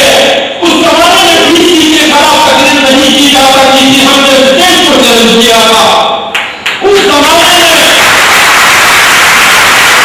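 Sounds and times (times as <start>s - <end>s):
voice: 0.0s - 6.1s, 6.8s - 8.1s
loud steady hiss: 8.0s - 10.0s.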